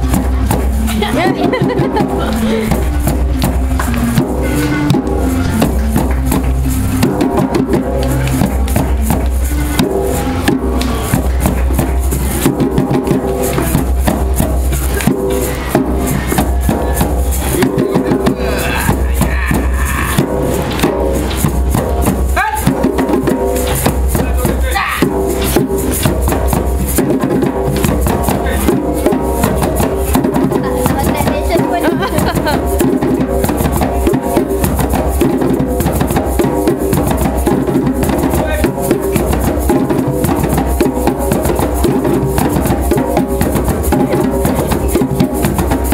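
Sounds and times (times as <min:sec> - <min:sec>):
djembes playing: 0:00.0 - 0:45.9.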